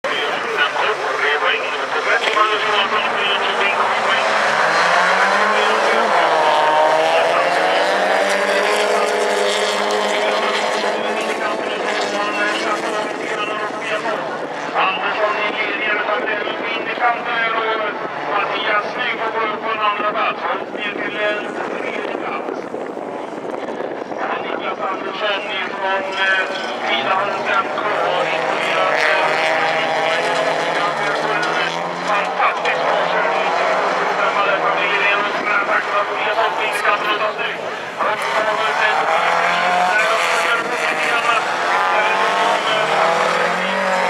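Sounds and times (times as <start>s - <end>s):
race car engines revving: 0.0s - 44.0s.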